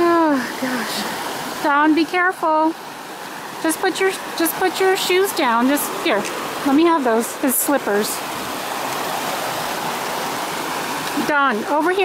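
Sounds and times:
creek water rushing over rocks: 0.0s - 12.0s.

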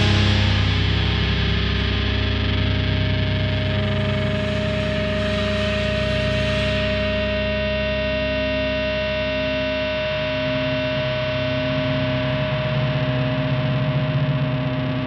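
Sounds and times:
distorted electric guitar chord: 0.0s - 15.0s.

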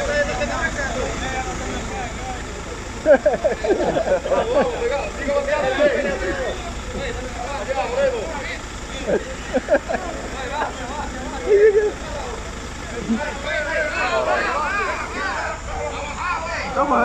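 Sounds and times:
people talking: 0.0s - 17.0s
vehicle engine idling: 0.0s - 17.0s.

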